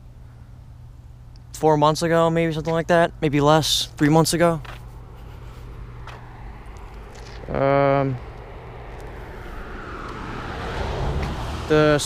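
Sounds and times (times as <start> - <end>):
passing vehicle rumble: 4.9 - 12.0.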